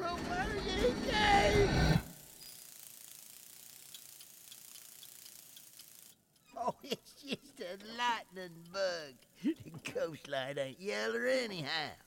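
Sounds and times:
faint steady hiss: 0:02.1 - 0:12.0
tiny ticks: 0:03.3 - 0:06.5, 0:07.4 - 0:09.8.

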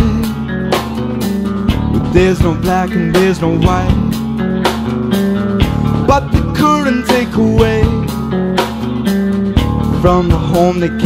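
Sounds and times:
bass line: 0:00.0 - 0:11.0
drums: 0:00.0 - 0:11.0
electric guitar: 0:00.0 - 0:11.0.

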